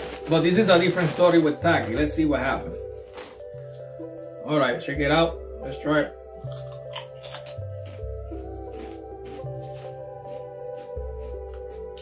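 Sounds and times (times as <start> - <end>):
potato chip crunching: 0.0 - 2.1, 6.4 - 12.0
background music with bass line: 0.0 - 12.0.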